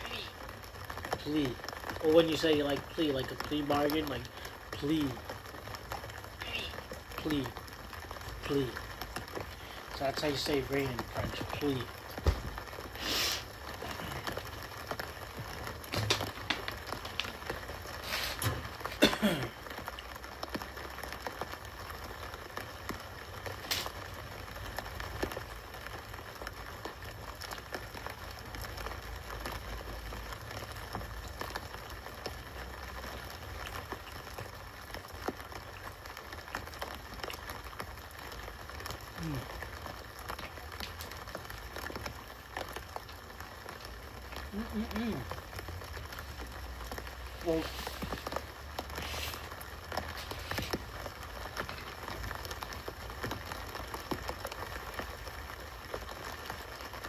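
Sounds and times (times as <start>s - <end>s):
rain pattering through a speaker: 0.0s - 57.0s
plastic bottle crinkling: 11.0s - 19.7s.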